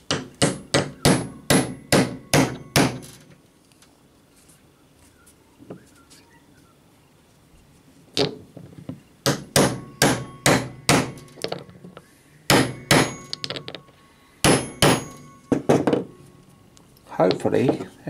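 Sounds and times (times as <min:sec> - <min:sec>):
hammer tapping metal mould: 0:09.3 - 0:11.3, 0:14.5 - 0:16.1.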